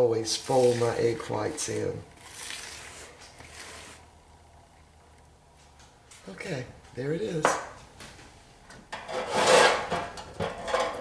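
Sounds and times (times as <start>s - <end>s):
spatula scraping plastic bowl: 0.2s - 4.1s.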